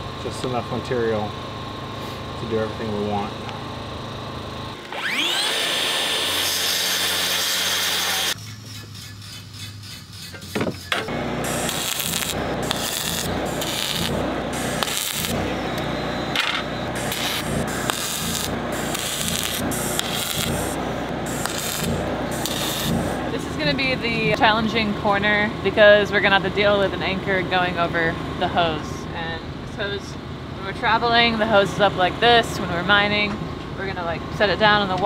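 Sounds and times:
power tool motor whine: 3.6s - 24.4s
arc welding crackling hiss: 9.2s - 15.5s, 16.9s - 23.4s.

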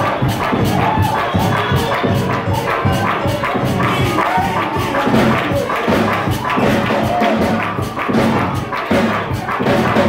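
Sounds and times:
voices singing: 0.0s - 8.0s
drums fast beat: 0.0s - 10.0s
pulsing bass: 0.0s - 10.0s.

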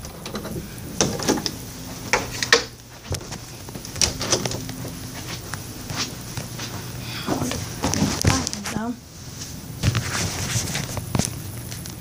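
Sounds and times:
footsteps on floor: 1.9s - 11.3s.

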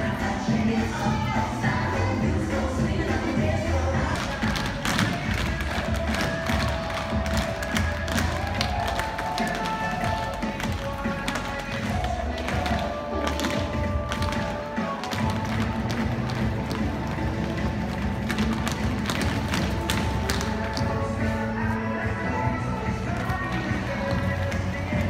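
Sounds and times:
dance music: 0.0s - 25.0s
shoes tapping on stage floor: 2.9s - 25.0s.

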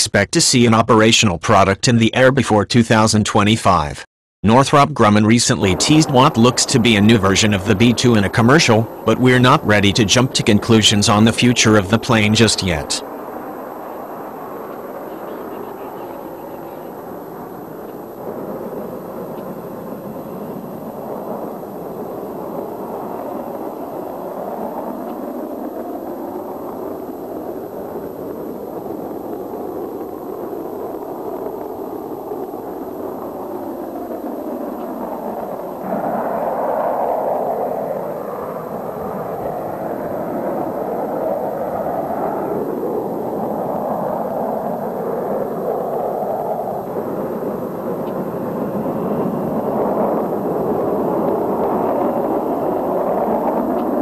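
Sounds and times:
aircraft in flight rushing: 5.0s - 54.0s.

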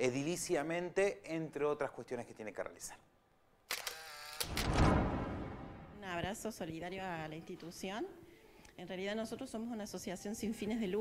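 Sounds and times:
swoosh into deep whoosh: 4.5s - 6.1s.

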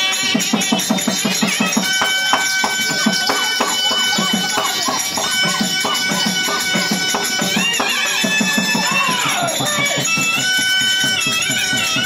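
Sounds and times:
jingling bells: 0.0s - 12.0s
fast drum beat: 0.3s - 12.0s.

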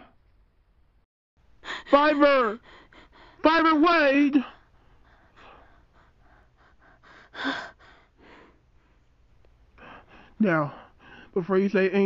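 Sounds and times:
person breathing quickly and gasping: 1.6s - 3.5s, 4.4s - 9.1s, 9.8s - 11.4s.

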